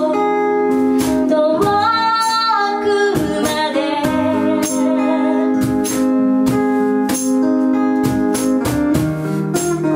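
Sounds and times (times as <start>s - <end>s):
woman singing: 0.0s - 6.0s.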